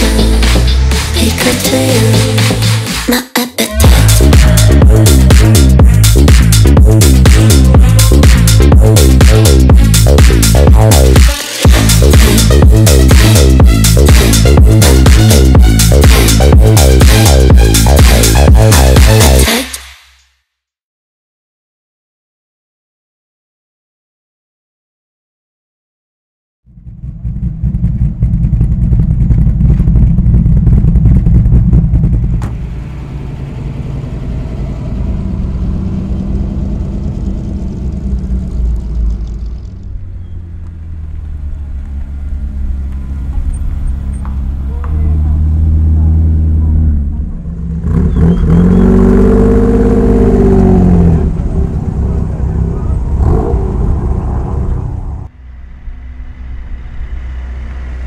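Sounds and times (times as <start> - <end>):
car engines revving: 3.7 - 19.5, 26.8 - 58.0.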